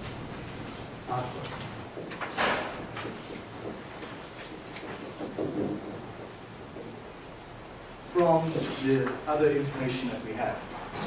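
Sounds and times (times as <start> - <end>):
lecture hall noise: 0.0 - 11.0.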